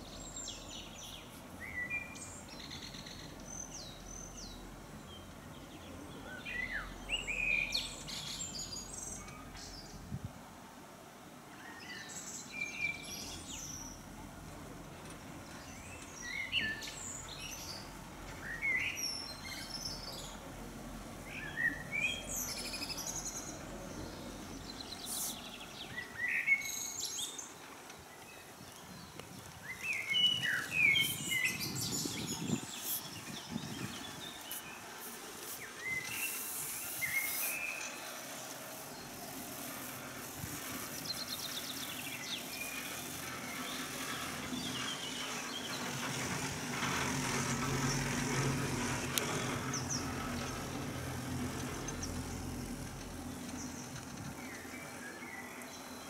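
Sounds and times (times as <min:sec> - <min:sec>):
songbirds chirping: 0:00.0 - 0:10.2, 0:11.3 - 0:56.0
background hiss: 0:00.0 - 0:56.0.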